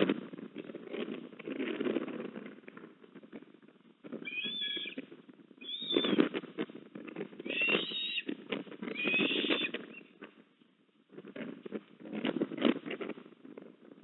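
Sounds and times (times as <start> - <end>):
ospreys whistled chirps: 4.2 - 5.0, 5.6 - 6.2, 7.5 - 8.3, 8.9 - 9.7.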